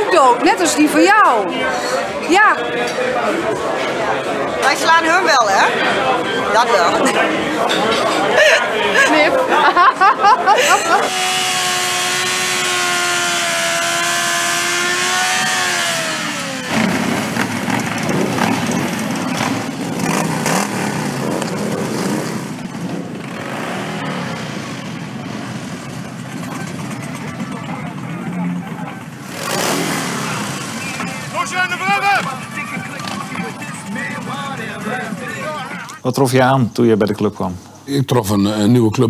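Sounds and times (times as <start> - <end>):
motorcycle engines running rough: 10.0 - 36.0
motorcycle engine at high revs: 10.6 - 35.7.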